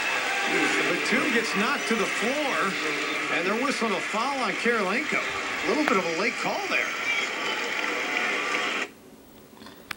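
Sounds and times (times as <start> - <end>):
arena crowd noise: 0.0 - 9.0
faint voices: 0.5 - 8.9.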